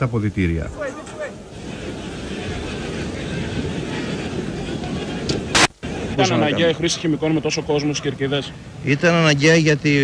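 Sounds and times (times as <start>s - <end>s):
stadium crowd noise: 0.5s - 10.0s.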